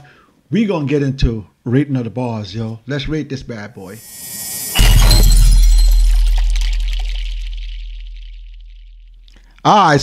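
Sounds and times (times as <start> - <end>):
crackling high shimmer: 4.0 - 9.1.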